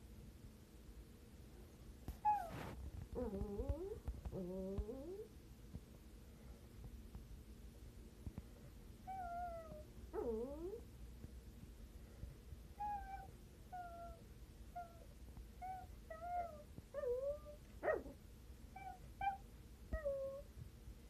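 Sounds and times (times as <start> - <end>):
dog whining: 2.1 - 5.3, 9.0 - 10.8, 12.8 - 20.5.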